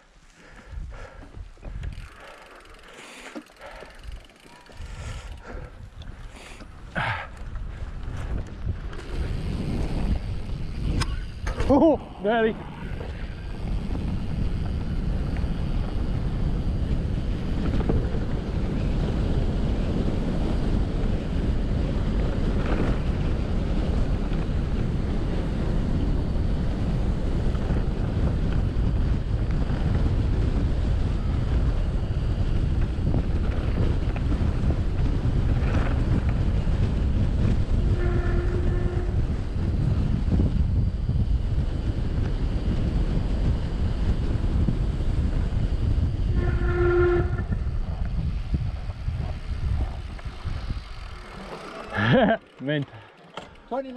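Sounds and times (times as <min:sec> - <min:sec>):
wind buffeting microphone: 0:03.6 - 0:52.4
tyres rumbling over ground: 0:06.8 - 0:53.8.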